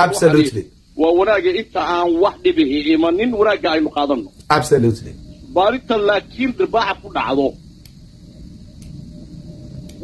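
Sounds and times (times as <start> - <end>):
faint hum: 0.0 - 10.0
low background rumble: 0.0 - 10.0.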